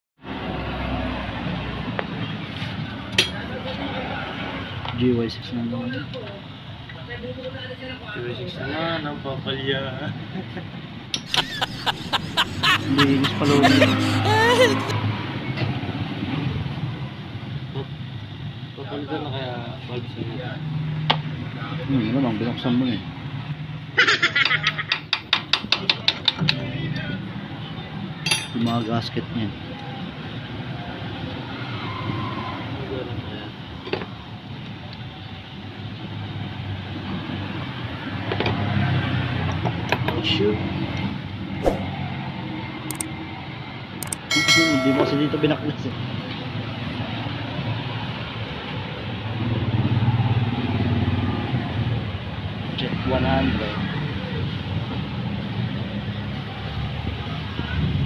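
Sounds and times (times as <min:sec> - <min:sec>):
sharp click: 0:44.0 - 0:44.3.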